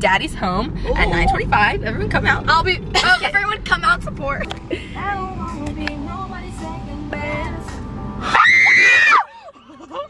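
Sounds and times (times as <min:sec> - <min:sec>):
car cabin rumble: 0:00.0 - 0:10.0
woman screaming: 0:08.2 - 0:09.4.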